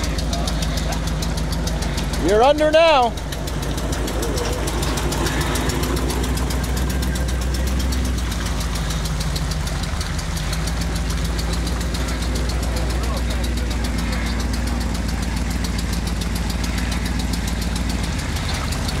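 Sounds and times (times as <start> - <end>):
truck engine running at low revs: 0.0 - 19.0.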